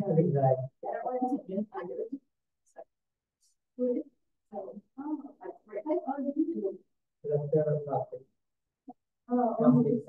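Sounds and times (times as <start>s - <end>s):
person mumbling: 9.6s - 10.0s.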